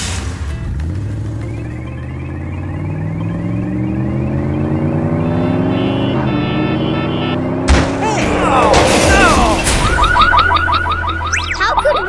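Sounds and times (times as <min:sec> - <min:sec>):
cartoon car alarm chirps: 0:01.8 - 0:07.4, 0:09.1 - 0:12.0.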